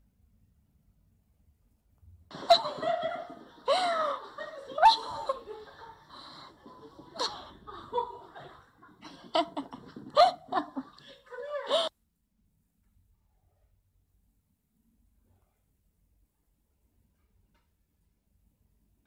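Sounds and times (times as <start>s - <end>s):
person laughing and giggling: 2.3s - 11.9s.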